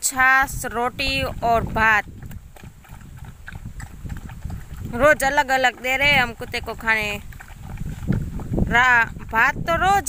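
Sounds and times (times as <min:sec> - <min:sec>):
dogs lapping and chewing: 0:00.2 - 0:10.0.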